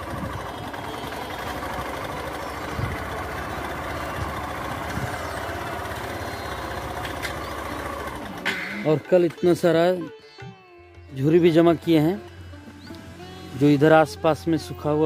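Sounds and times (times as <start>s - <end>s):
motorcycle engine running: 0.0s - 9.8s.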